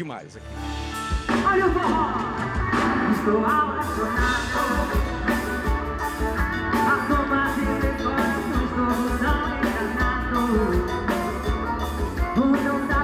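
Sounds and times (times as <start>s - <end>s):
live band playing: 0.0s - 13.0s
drums with steady beat: 0.6s - 13.0s
electric guitar: 0.6s - 13.0s
woman singing: 1.4s - 13.0s.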